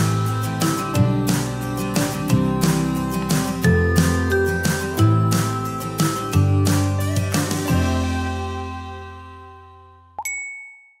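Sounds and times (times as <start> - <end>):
bright chime ding: 10.2 - 11.0.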